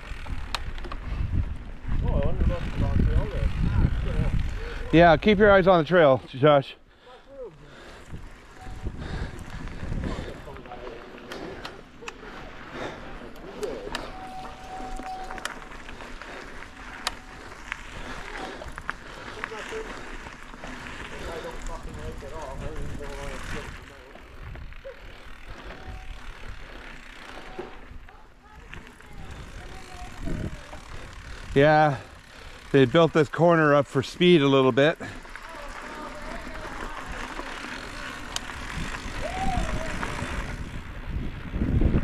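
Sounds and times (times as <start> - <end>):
wind rumble: 0.0 - 5.4, 7.8 - 13.0, 36.5 - 42.0
bike clicks and rattles: 0.0 - 6.4, 7.7 - 42.0
knobby tyres rolling on dirt: 0.0 - 42.0.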